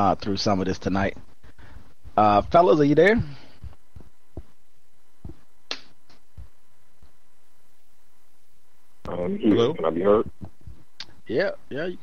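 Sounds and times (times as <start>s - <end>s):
faint line hiss: 0.0s - 12.0s
soft low thumps: 0.0s - 12.0s
sharp click: 5.7s - 6.2s.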